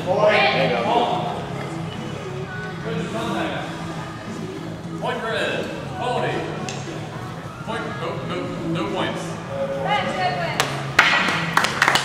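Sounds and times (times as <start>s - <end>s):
people clapping: 10.6s - 12.0s.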